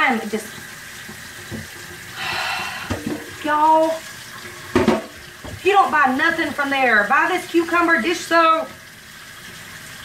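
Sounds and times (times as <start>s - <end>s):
faucet running into metal sink: 0.0s - 10.0s.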